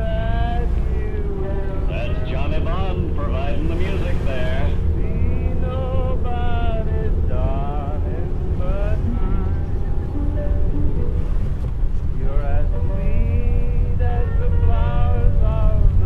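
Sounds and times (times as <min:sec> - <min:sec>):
car engine and road noise: 0:00.0 - 0:16.0
old radio voice: 0:01.3 - 0:05.1.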